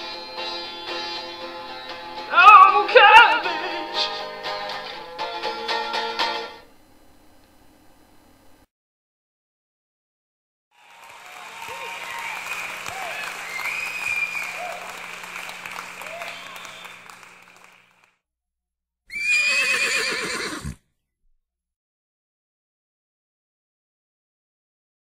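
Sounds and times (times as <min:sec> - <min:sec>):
crowd cheering and applause: 0:10.7 - 0:18.1
loud wavering high cry: 0:19.1 - 0:20.8.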